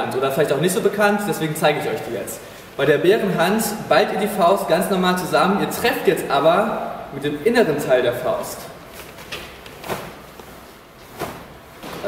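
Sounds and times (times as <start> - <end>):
fabric swishes: 9.0 - 12.0.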